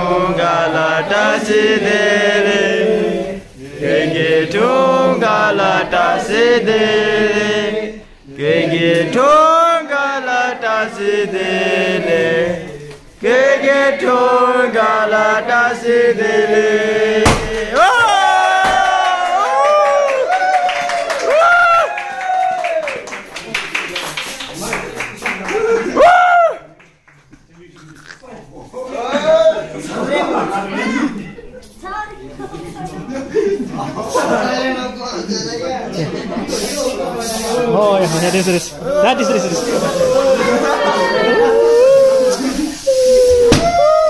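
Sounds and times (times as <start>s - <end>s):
crowd shouting: 17.1s - 22.9s, 38.8s - 44.0s
confetti cannon pop: 17.2s - 17.8s, 43.4s - 43.9s
people cheering with whoops: 17.8s - 23.1s, 25.4s - 26.7s, 40.0s - 44.0s
crowd laughing: 27.8s - 31.7s, 32.4s - 43.5s
spray cans hissing: 36.5s - 43.6s.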